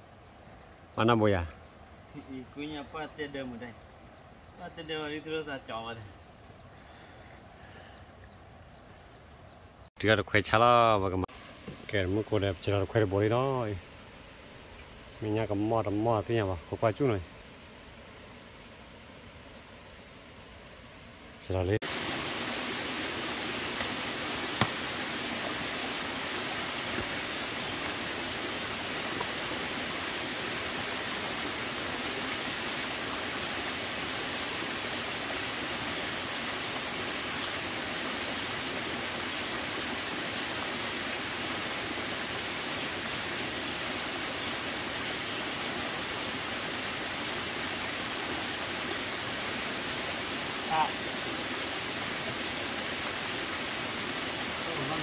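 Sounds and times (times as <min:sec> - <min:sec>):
stream running over rocks: 0:10.4 - 0:55.0.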